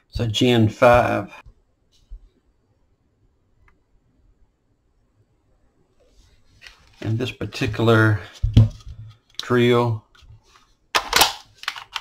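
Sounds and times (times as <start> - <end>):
battery pack clacking onto drill: 11.0 - 12.0.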